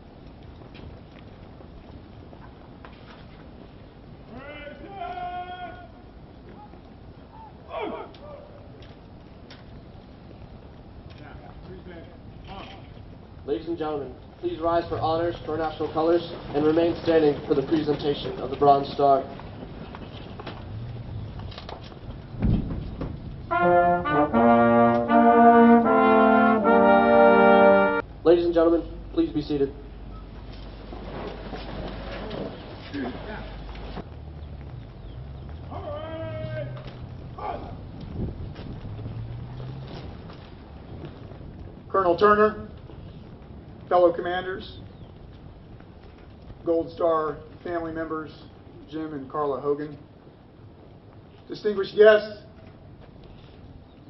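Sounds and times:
drill commander shouting commands: 0:04.3 - 0:06.0
brass band playing chords: 0:23.5 - 0:28.1.

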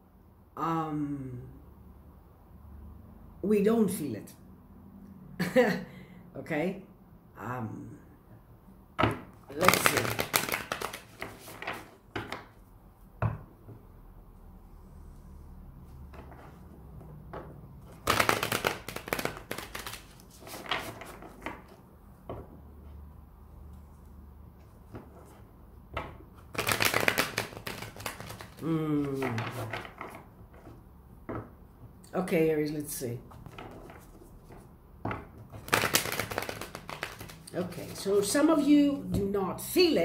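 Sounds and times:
cards being shuffled by hand: 0:09.1 - 0:12.6, 0:17.8 - 0:22.5, 0:26.4 - 0:30.8, 0:33.3 - 0:34.7, 0:35.4 - 0:38.5.

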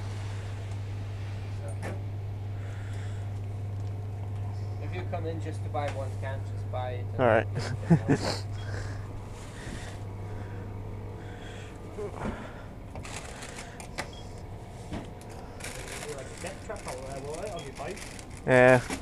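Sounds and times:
steady low hum: 0:00.0 - 0:19.0
rustling of goods: 0:13.0 - 0:19.0.

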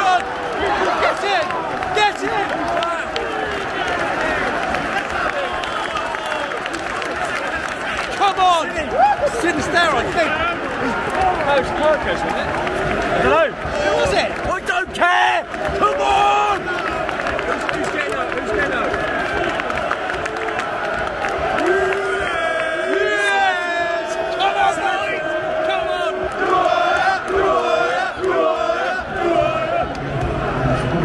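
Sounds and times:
football crowd singing and chanting: 0:00.0 - 0:08.6, 0:09.6 - 0:31.0.

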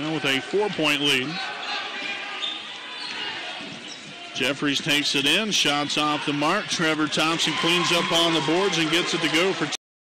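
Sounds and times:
crowd chatter echoing: 0:00.0 - 0:09.8.

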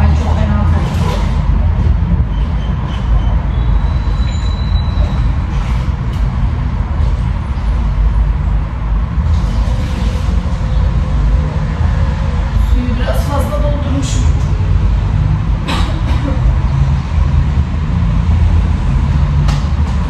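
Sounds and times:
loud low rumble: 0:00.0 - 0:20.0.

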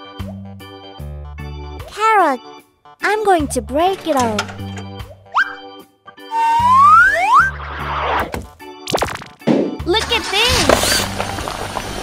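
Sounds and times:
children's background music: 0:00.0 - 0:11.4
rising whistle glide: 0:05.4 - 0:07.9.

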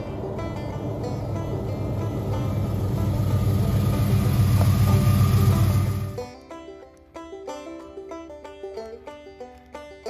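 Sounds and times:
pickup truck engine rumble: 0:00.0 - 0:06.3.

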